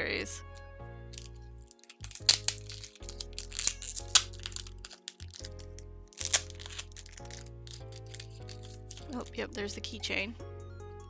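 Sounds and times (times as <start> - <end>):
background music: 0.0 - 11.0
foil packet crinkling and tearing: 1.1 - 9.4.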